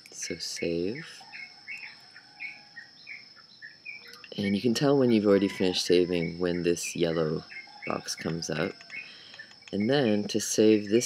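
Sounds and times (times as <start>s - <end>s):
faint bird chirping: 0.0s - 11.0s.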